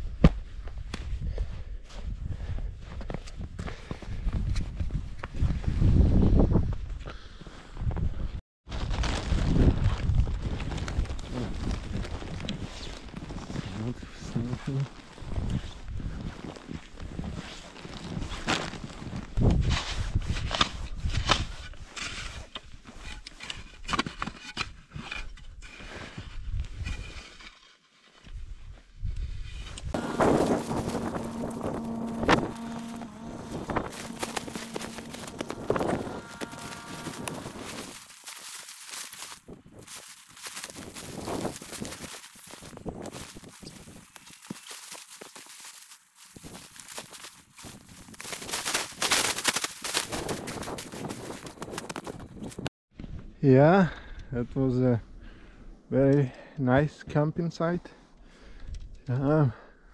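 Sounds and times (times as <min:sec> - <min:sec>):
boots crunching through snow: 0:11.2 - 0:20.0, 0:29.9 - 0:52.0
gear knocking and rustling: 0:30.0 - 0:52.6.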